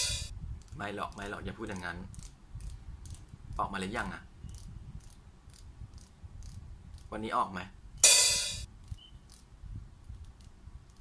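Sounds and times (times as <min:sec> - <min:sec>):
loud metallic clang: 0:00.0 - 0:00.3, 0:08.0 - 0:08.7.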